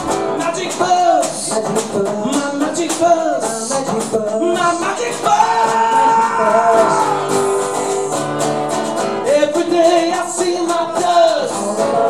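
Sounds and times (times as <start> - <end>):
man singing: 0.0 - 12.0
strummed acoustic guitars: 0.0 - 12.0.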